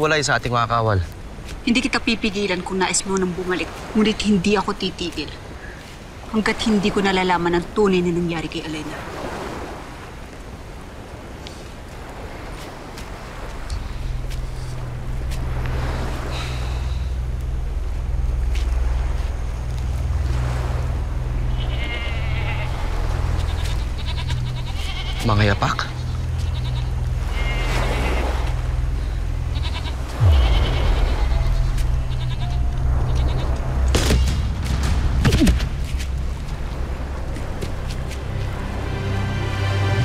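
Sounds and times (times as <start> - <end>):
low steady drone: 13.6 - 40.0
sheep bleating: 21.5 - 28.6, 29.5 - 33.6
sudden low hit: 30.1 - 36.7.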